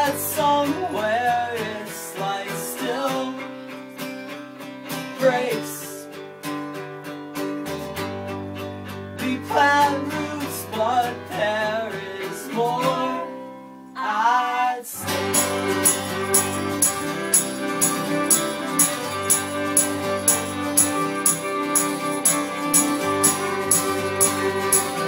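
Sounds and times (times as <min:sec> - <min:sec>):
strummed guitars: 0:00.0 - 0:13.7, 0:15.0 - 0:25.0
wavering lead melody: 0:15.1 - 0:25.0.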